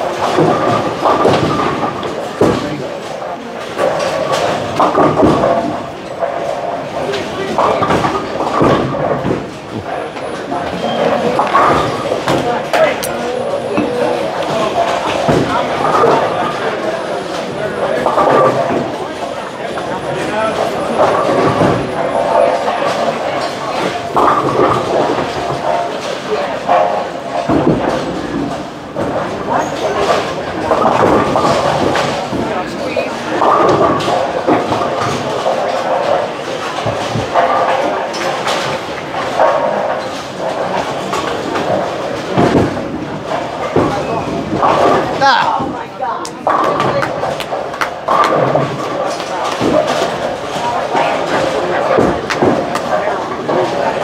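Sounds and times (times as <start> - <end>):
bowling balls rolling: 0.0 - 54.0
bowling pins crashing: 0.0 - 54.0
chatter of many people: 0.0 - 54.0.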